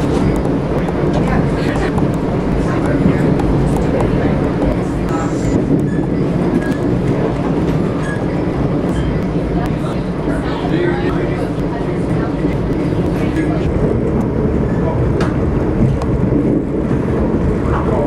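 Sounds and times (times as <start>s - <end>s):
train rumbling: 0.0s - 18.0s.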